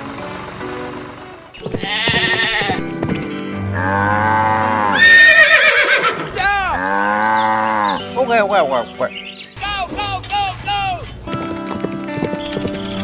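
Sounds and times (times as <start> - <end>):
wavering animal calls: 1.6 - 8.2
cheerful background music: 7.4 - 13.0.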